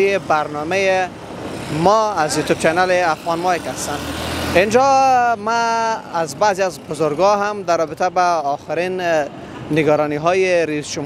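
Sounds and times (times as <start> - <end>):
man talking: 0.0 - 11.0
motor rickshaw engine rumbling: 0.0 - 11.0
street traffic: 0.0 - 11.0.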